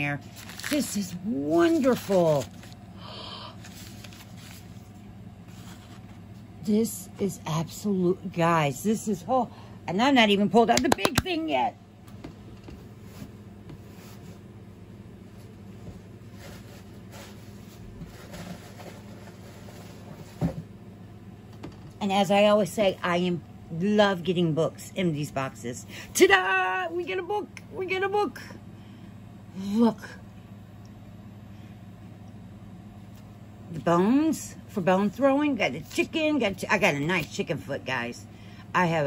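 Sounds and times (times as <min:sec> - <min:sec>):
low background hum: 0:00.0 - 0:39.0
plastic zip bag rustling: 0:00.2 - 0:02.8.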